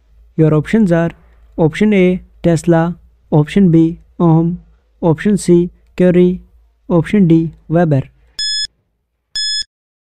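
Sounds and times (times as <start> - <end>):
short high electronic beeps: 8.4 - 8.7, 9.4 - 9.7.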